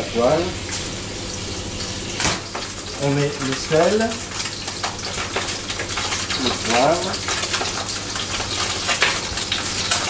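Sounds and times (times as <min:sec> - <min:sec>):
fish sizzling in a frying pan: 0:00.0 - 0:10.0.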